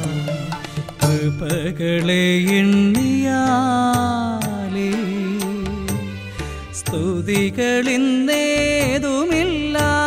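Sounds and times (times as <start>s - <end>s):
instrumental accompaniment: 0.0s - 10.0s
light percussion strikes: 0.0s - 10.0s
man singing devotional song: 0.0s - 10.0s.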